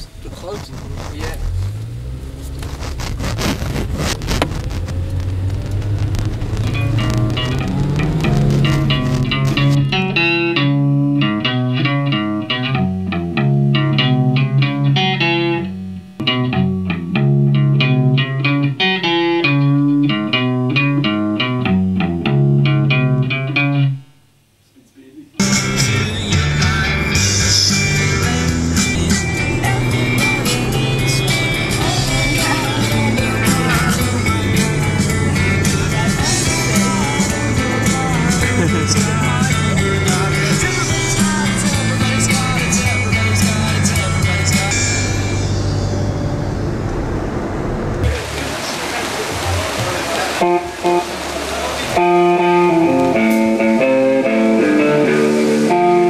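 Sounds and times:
guitar riff: 0.0 - 24.3, 25.1 - 56.0
rock music with guitar: 0.1 - 24.1, 25.4 - 47.0, 50.4 - 56.0.

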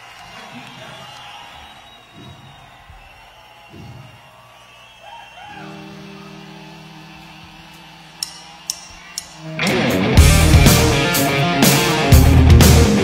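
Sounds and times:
shouts from audience: 0.0 - 9.6
crowd noise: 0.0 - 13.0.

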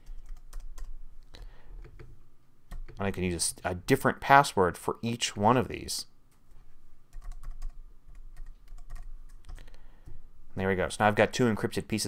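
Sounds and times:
computer keyboard clicking: 7.1 - 9.6.

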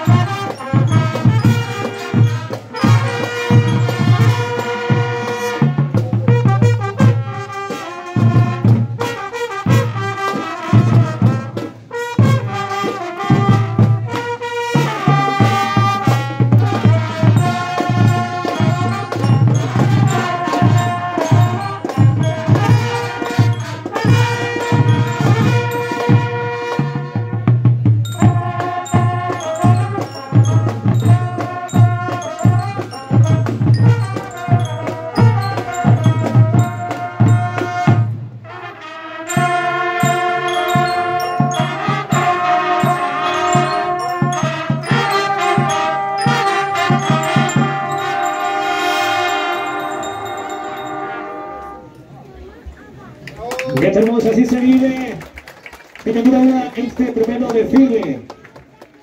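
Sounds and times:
bell lyres: 0.0 - 7.5, 16.7 - 38.2, 39.3 - 52.3
drum beat: 0.0 - 38.4, 39.3 - 51.2, 56.2 - 58.4
brass melody: 0.0 - 52.2
marching band playing: 0.0 - 53.0, 53.6 - 58.9.

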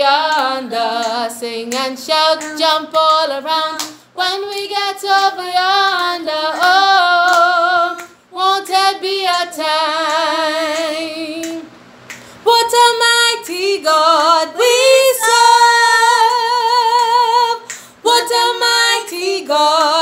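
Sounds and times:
woman singing gospel: 0.0 - 11.7, 12.4 - 20.0
children singing: 14.6 - 16.3.

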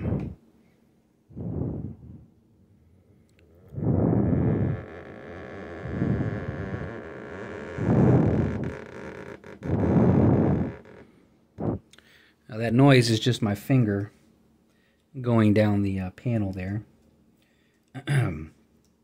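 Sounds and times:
fingertip rubbing painted panel: 3.8 - 11.0.

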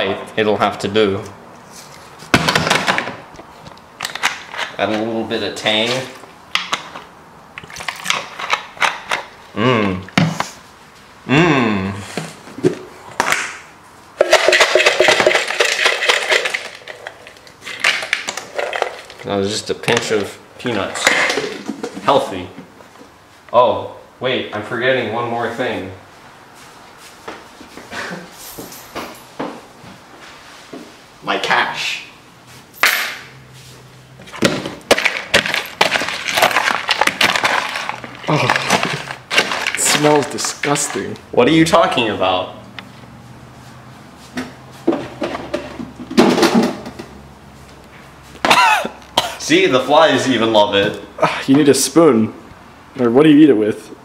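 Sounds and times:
peanuts clattering in bowl: 14.2 - 19.3, 34.9 - 41.2.

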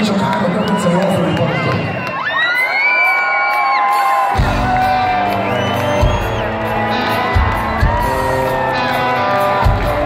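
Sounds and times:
crowd cheering: 0.0 - 10.0
live hard rock band: 2.7 - 10.0.

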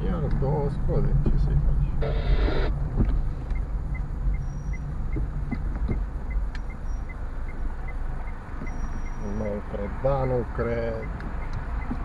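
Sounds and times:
car engine and road rumble: 0.0 - 12.0
turn signal ticking: 2.0 - 12.0.

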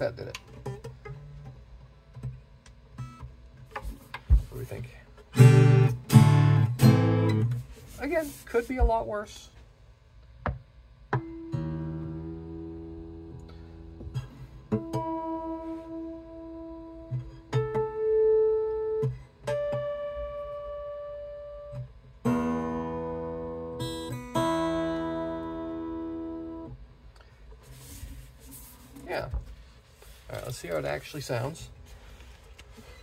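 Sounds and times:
acoustic guitar strums: 0.0 - 9.2, 10.4 - 27.7
acoustic guitar strings plucked: 5.2 - 7.7, 10.5 - 26.8.

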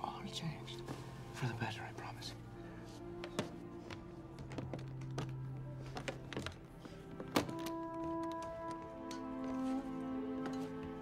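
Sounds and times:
sustained music score: 0.0 - 11.0.

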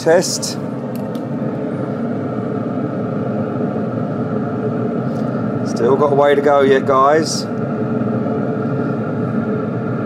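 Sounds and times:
grill fan humming: 0.0 - 10.0.

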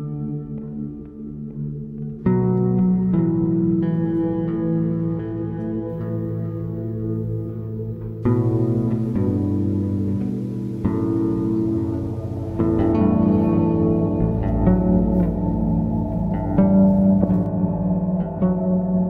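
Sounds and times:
plucked guitar: 0.0 - 19.0
deep bass: 6.8 - 19.0.

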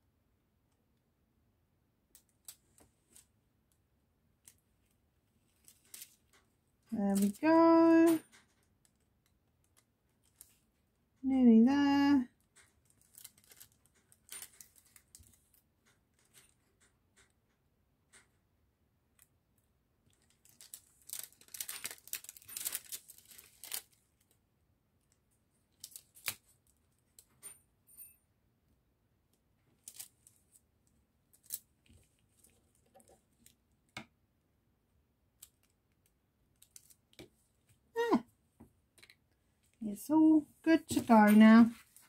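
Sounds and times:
tape ticks and rustles: 2.1 - 3.8, 4.4 - 11.2, 12.3 - 18.5, 19.1 - 24.4, 25.0 - 27.6, 29.3 - 34.1, 35.4 - 37.8.

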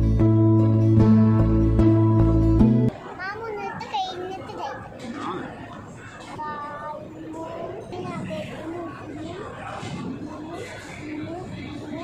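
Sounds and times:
young child talking: 2.9 - 5.4, 6.3 - 9.5.

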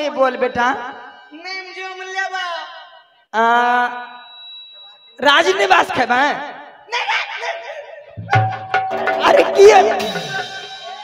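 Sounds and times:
thin steady high tone: 0.0 - 7.3.

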